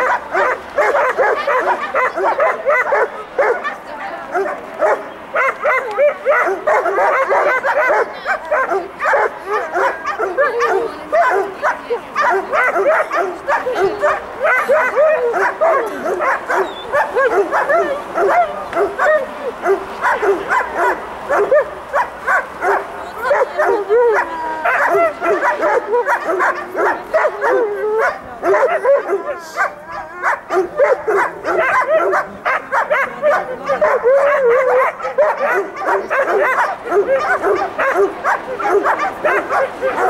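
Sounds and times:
dog barking excitedly: 0:00.0 - 0:40.0.

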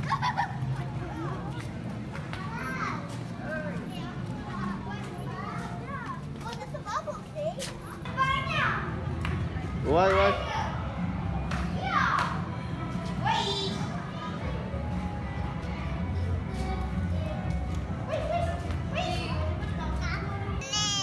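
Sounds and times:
young children chattering: 0:00.3 - 0:08.9, 0:18.1 - 0:21.0.

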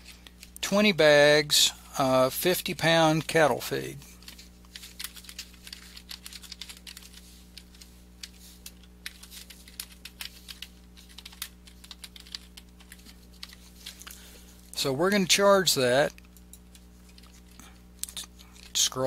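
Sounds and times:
faint low hum: 0:00.0 - 0:19.0.

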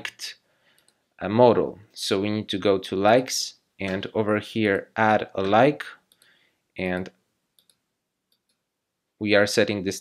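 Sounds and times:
computer mouse clicks: 0:00.7 - 0:01.0, 0:05.4 - 0:06.4, 0:07.6 - 0:08.6.

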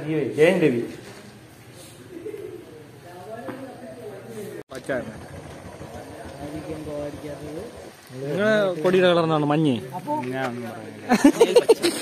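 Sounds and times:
bird cooing: 0:02.0 - 0:02.8.

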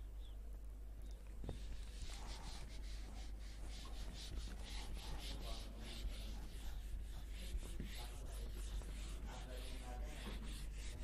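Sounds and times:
eraser scrubbing whiteboard: 0:01.4 - 0:11.0.

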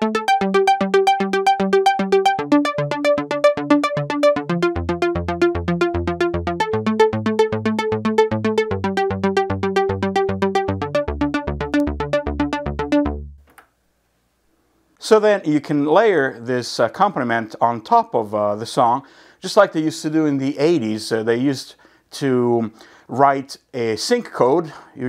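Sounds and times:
synthesizer arpeggio over chords: 0:00.0 - 0:13.4.

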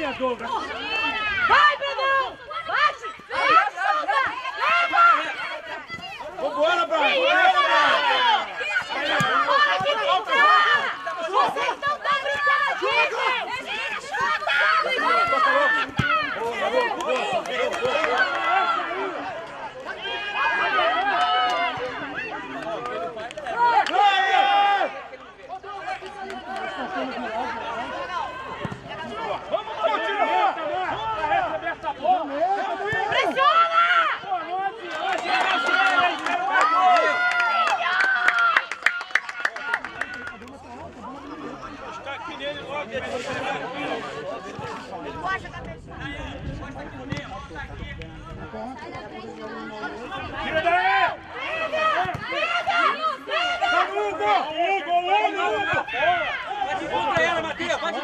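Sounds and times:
voices talking and calling out: 0:00.0 - 0:58.0.

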